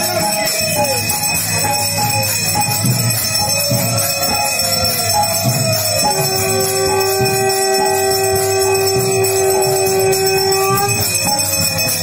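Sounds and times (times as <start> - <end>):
conch shell blown: 0.0 - 12.0
hand bells ringing: 0.0 - 12.0.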